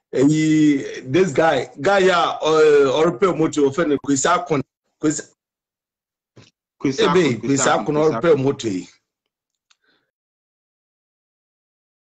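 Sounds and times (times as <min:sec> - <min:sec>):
person speaking over video call: 0:00.0 - 0:05.4, 0:06.4 - 0:10.1.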